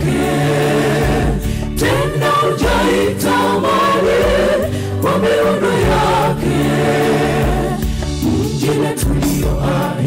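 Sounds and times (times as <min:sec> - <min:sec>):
mixed choir singing gospel: 0:00.0 - 0:10.0.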